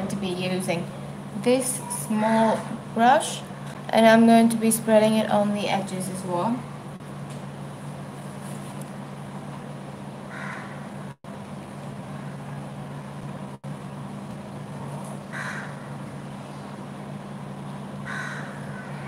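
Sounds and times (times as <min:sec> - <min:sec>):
steady low hum: 0:00.0 - 0:19.0
bird harsh calls: 0:18.0 - 0:19.0.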